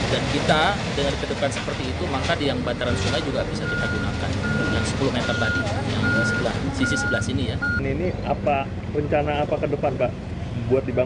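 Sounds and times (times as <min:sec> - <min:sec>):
reversing alarm beeping: 0:03.6 - 0:07.8.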